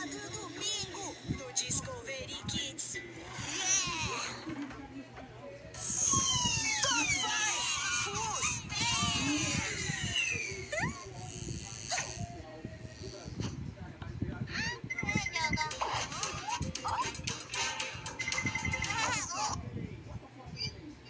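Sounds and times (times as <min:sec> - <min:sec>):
squeaky gliding vocal sounds: 0:03.1 - 0:04.7, 0:05.8 - 0:12.3
cartoon music: 0:15.4 - 0:19.5
cartoon character voices: 0:18.9 - 0:19.6.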